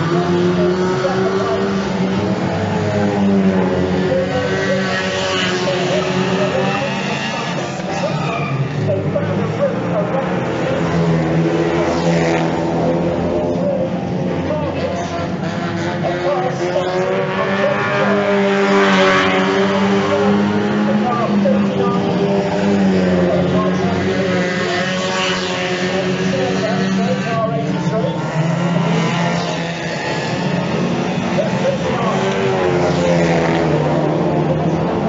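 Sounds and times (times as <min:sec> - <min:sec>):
cars sweeping past: 0:00.0 - 0:35.0
race car engines revving: 0:00.0 - 0:35.0.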